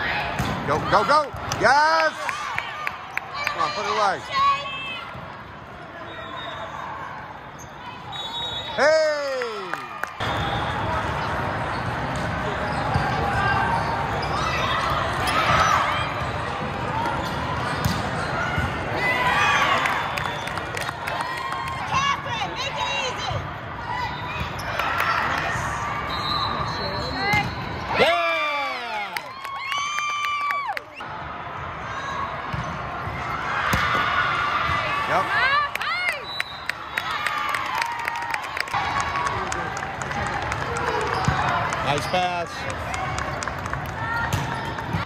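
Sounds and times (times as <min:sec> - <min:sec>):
voices and shouts in echoing hall: 0:00.0 - 0:29.7, 0:30.5 - 0:36.5, 0:37.2 - 0:45.0
volleyball hits: 0:32.5 - 0:34.9, 0:44.2 - 0:45.0.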